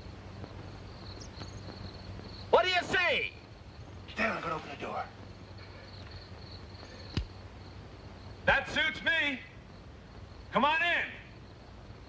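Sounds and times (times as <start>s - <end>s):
film soundtrack hiss and hum: 0.0s - 12.0s.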